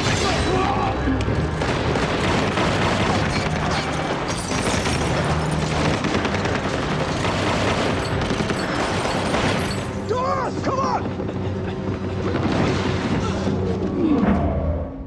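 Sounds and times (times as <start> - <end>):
gunshots: 0.0 - 10.1
dramatic film score: 0.0 - 15.0.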